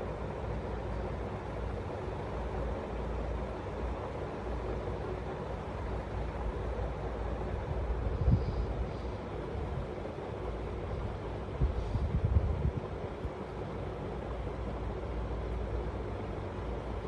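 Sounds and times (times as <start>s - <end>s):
low rumbling background noise: 0.0s - 17.0s.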